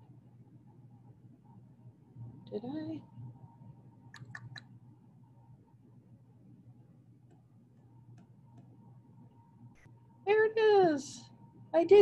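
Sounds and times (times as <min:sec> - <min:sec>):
faint steady hum: 0:00.0 - 0:12.0
computer mouse clicks: 0:04.2 - 0:04.7.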